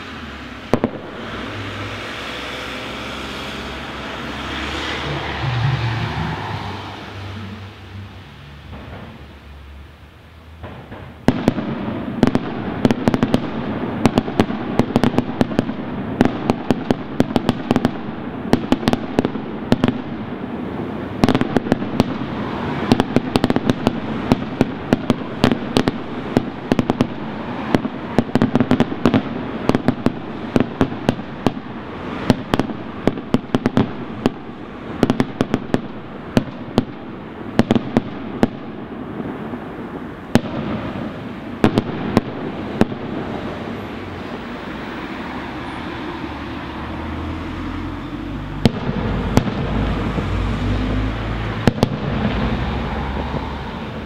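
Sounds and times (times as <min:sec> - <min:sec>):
fireworks bursting: 0:00.0 - 0:54.0.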